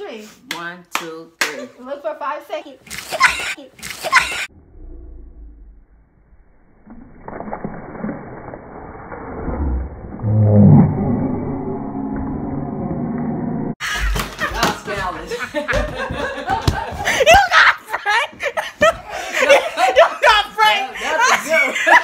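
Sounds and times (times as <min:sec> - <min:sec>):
low drawn-out wavering sounds: 0:04.5 - 0:13.8
water splashing from bottle: 0:06.8 - 0:10.1.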